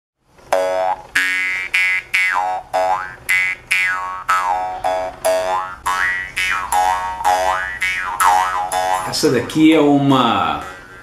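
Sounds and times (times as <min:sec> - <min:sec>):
jaw harp twanging: 0:00.5 - 0:09.4, 0:10.0 - 0:11.0.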